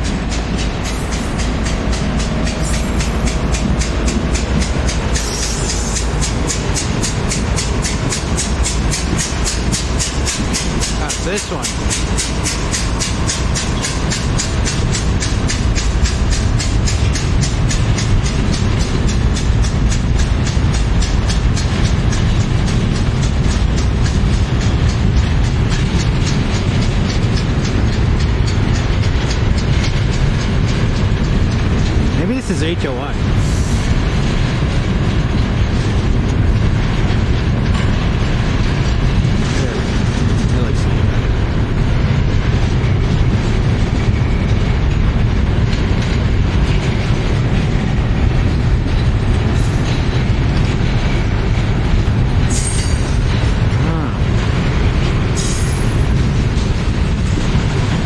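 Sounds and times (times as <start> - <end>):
diesel locomotives under load: 0.0 - 58.0
freight cars rumbling over rails: 0.0 - 58.0.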